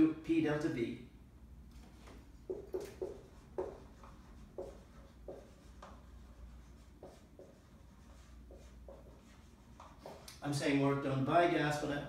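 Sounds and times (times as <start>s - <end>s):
marker writing on whiteboard: 1.8s - 10.4s.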